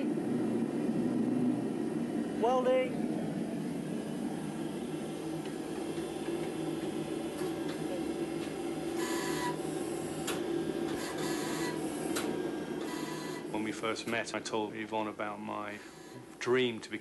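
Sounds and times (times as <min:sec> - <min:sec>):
forge furnace humming: 0:00.0 - 0:17.0.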